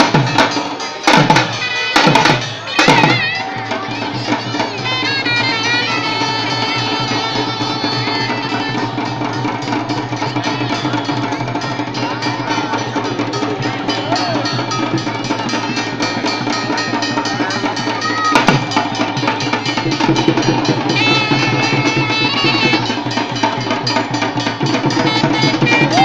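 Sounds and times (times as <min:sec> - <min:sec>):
hand drums driving beat: 0:00.0 - 0:26.0.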